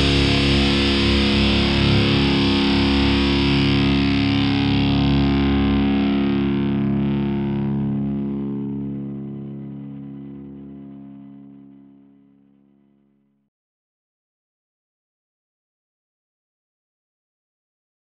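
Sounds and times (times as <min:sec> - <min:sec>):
distorted electric guitar chord: 0:00.0 - 0:13.2
bass: 0:00.0 - 0:13.4.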